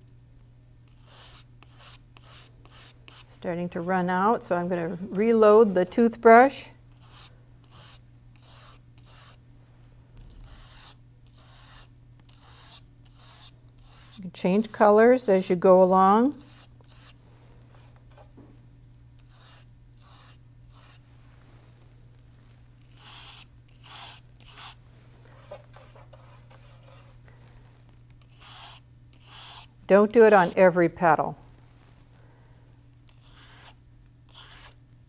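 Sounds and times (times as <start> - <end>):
toothbrush scratching on paper: 0.9 - 3.2, 7.0 - 9.4, 10.3 - 14.9, 16.4 - 17.2, 19.2 - 21.0, 22.9 - 24.8, 25.4 - 27.1, 28.2 - 29.7, 33.1 - 34.8.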